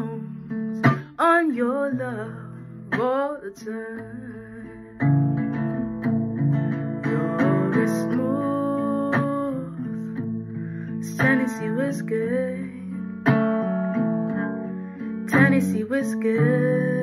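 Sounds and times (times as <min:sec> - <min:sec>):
acoustic guitar strumming: 0:00.0 - 0:17.0.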